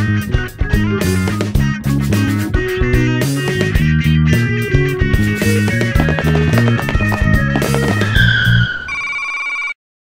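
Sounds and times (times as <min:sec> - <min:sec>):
electronic ringing tone: 0:06.0 - 0:09.8.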